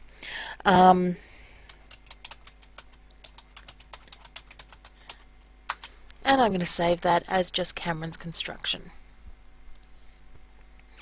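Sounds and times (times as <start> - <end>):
typing on computer keyboard: 1.7 - 6.0.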